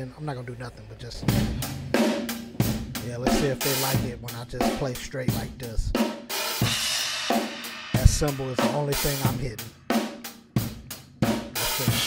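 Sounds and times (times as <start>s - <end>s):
drum hits: 1.2s - 12.0s.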